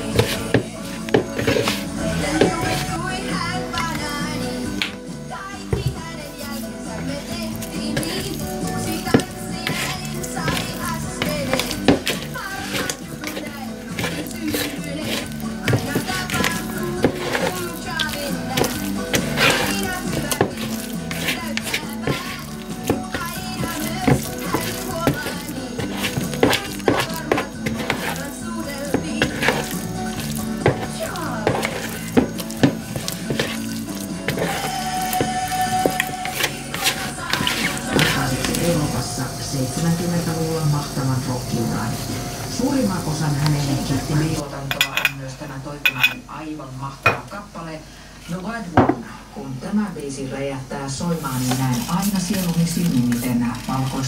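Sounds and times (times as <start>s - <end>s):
spatula squelching dough in bowl: 0.0s - 4.9s, 5.6s - 39.1s, 51.0s - 54.0s
song playing on a radio: 0.0s - 45.1s, 50.7s - 54.0s.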